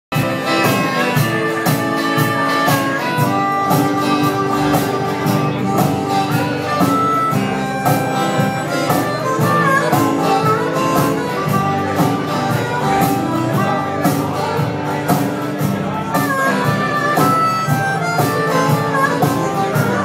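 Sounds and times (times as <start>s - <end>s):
acoustic guitars strumming: 0.1s - 20.0s
harmonica bending notes: 0.1s - 20.0s.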